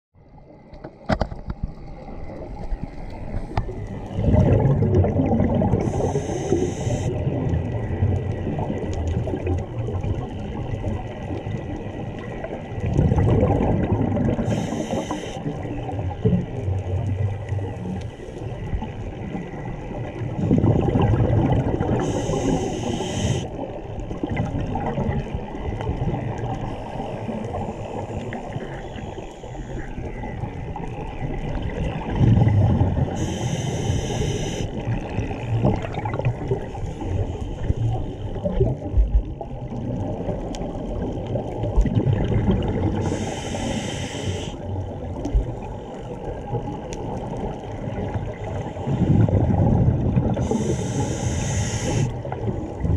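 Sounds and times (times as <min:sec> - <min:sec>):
exhaled bubbles gurgling: 0:00.3 - 0:52.9
regulator hiss: 0:05.8 - 0:07.1, 0:14.4 - 0:15.5, 0:22.0 - 0:23.5, 0:33.2 - 0:35.5, 0:43.0 - 0:44.6, 0:50.4 - 0:52.1
scuba breathing through regulator: 0:05.8 - 0:07.2, 0:14.4 - 0:15.6, 0:22.0 - 0:23.5, 0:33.1 - 0:34.9, 0:43.0 - 0:44.6, 0:50.4 - 0:52.2.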